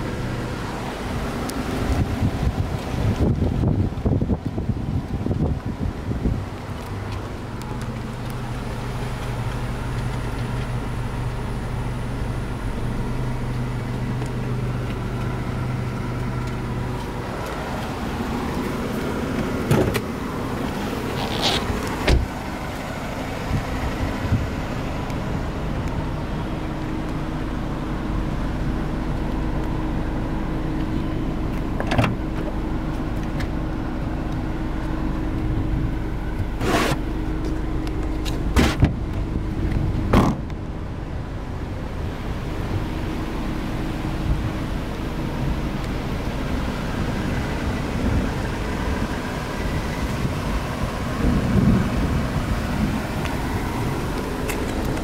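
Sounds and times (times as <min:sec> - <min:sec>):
car engine idling: 0:00.0 - 0:55.0
car doors clunking shut: 0:16.2 - 0:22.8, 0:31.5 - 0:33.6, 0:38.2 - 0:40.6.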